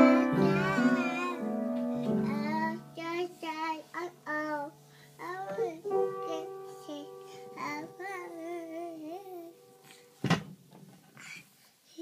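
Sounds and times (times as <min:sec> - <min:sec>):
toddler singing wordlessly: 0:00.0 - 0:09.9
piano notes: 0:00.0 - 0:10.2.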